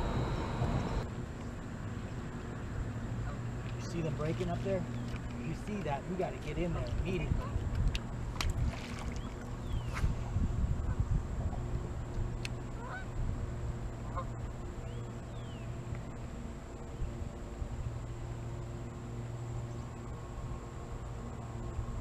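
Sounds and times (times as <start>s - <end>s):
electric boat motor humming: 0.0s - 6.8s, 11.6s - 22.0s.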